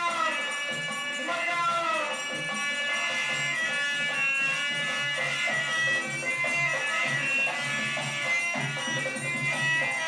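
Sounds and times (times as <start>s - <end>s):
dholak drum rhythm: 0.0s - 10.0s
harmonium melody: 0.0s - 10.0s.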